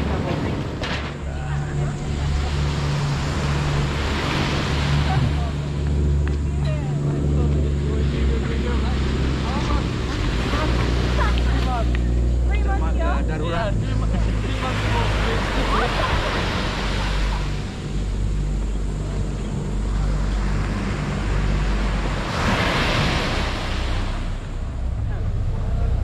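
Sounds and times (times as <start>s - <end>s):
people talking: 0.0s - 3.4s, 4.9s - 18.2s, 25.0s - 26.0s
boat engines droning: 0.0s - 26.0s
waves washing onto beach: 0.0s - 26.0s.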